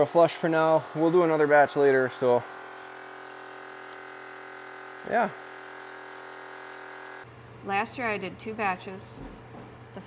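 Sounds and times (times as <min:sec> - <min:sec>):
electric pump humming: 0:00.0 - 0:07.4.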